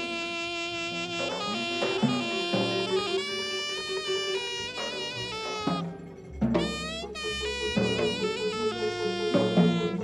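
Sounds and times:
drums: 0.0s - 10.0s
reedy horn notes: 0.0s - 10.0s.

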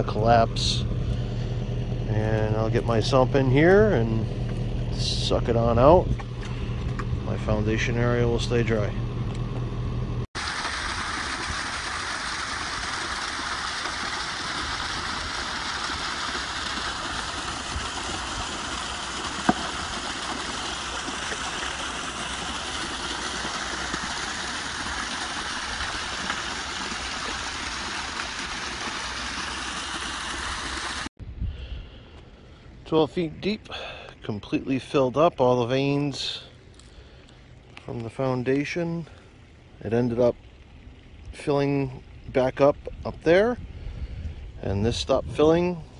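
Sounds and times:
water trickling into flooded hole: 10.4s - 31.1s, 33.7s - 44.6s.

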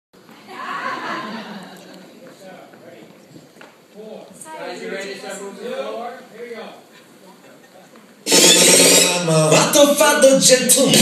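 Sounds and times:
murmur of voices: 0.2s - 11.0s.

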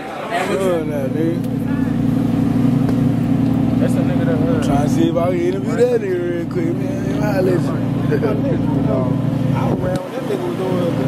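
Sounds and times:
car engine idling: 0.4s - 11.0s.

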